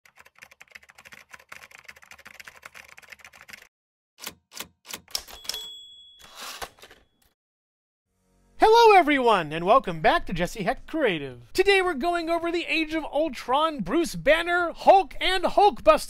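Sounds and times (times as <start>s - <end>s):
typewriter keys clacking: 0.1s - 7.0s
typewriter carriage return: 4.2s - 7.3s
typewriter bell ding: 5.1s - 7.2s.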